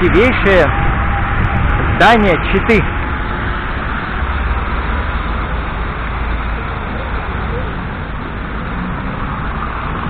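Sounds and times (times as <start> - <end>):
cars passing: 0.0 - 10.0.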